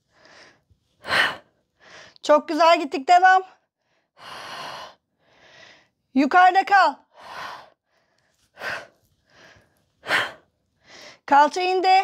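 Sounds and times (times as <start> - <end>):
woman breathing hard: 0.0 - 2.2, 3.7 - 6.0, 7.1 - 11.3.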